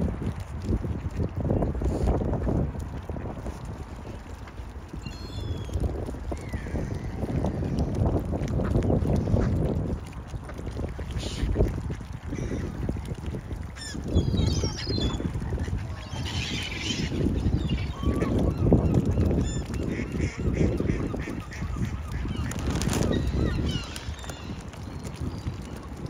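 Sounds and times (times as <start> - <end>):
wind rumble on microphone: 0.0 - 26.0
waterfowl calling: 13.8 - 24.7.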